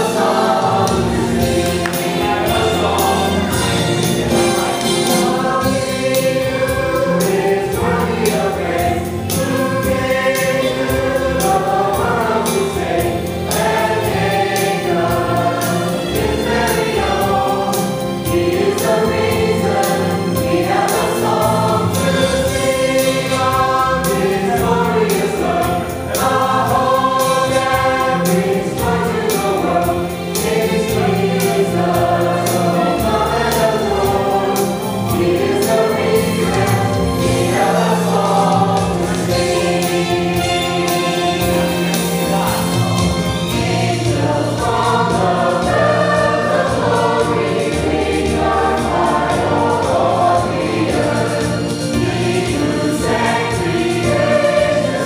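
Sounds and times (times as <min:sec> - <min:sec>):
accompaniment with steady beat: 0:00.0 - 0:55.0
mixed choir singing: 0:00.0 - 0:55.0.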